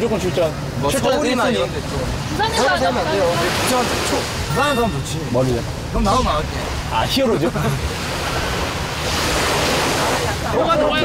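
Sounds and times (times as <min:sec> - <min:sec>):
small waves washing onto beach: 0:00.1 - 0:11.0.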